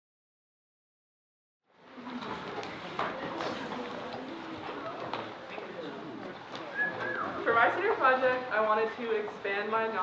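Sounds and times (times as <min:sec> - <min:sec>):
faint voices murmuring: 0:01.7 - 0:10.0.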